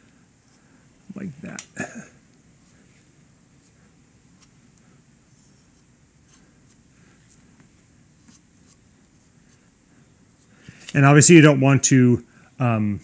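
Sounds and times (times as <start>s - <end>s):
gloved hand scratching and rubbing: 2.6s - 10.8s.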